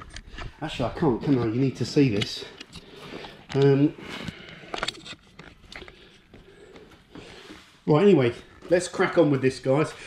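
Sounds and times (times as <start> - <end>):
camera handling knocks and rustles: 1.3 - 7.2.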